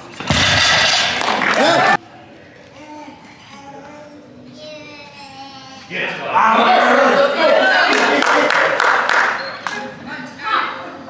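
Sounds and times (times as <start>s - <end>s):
crowd cheering and shouting: 6.4s - 8.5s.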